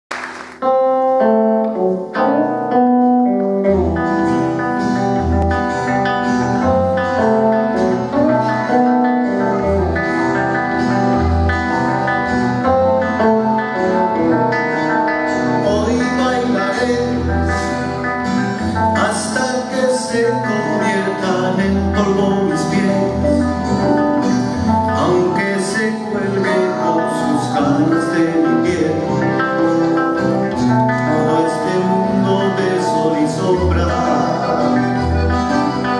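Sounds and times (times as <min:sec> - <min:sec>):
guitars and accordion: 0:00.3 - 0:35.9.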